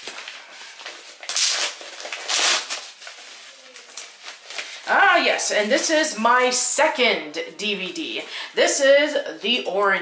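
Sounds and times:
paper envelope rustling: 0.0s - 5.1s.

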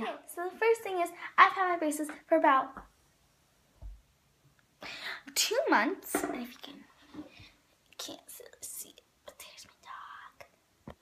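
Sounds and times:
person whispering: 8.0s - 10.6s.

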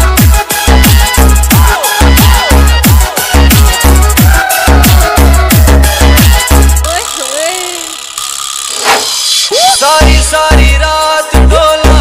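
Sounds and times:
heavy bass beat: 0.0s - 7.0s.

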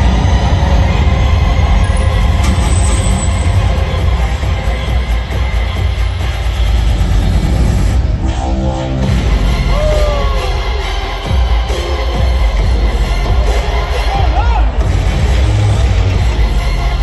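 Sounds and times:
loud heavy bass music: 0.0s - 17.0s.

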